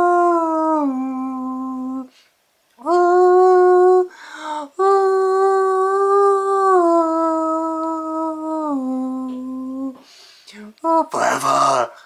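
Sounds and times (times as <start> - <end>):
man singing held notes: 8.6 - 12.0.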